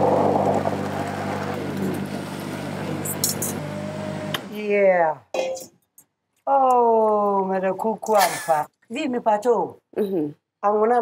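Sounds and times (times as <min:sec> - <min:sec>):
blender motor running: 0:00.0 - 0:04.6.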